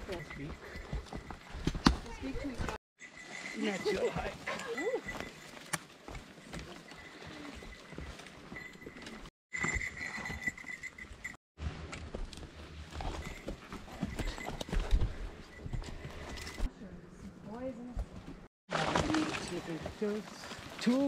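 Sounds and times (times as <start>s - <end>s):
branches brushing and snapping: 18.7s - 21.0s.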